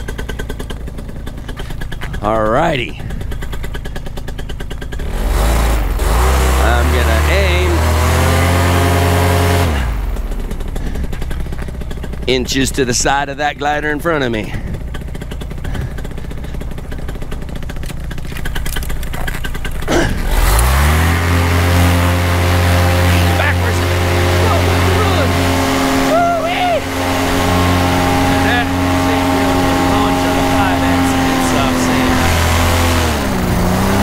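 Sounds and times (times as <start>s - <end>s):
paramotor engine droning: 0.0s - 34.0s.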